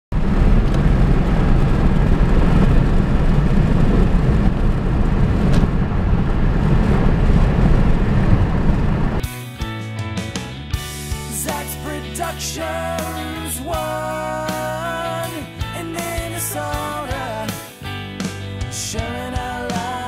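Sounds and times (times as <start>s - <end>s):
road and tyre noise inside car: 0.2s - 9.2s
music: 9.2s - 20.0s.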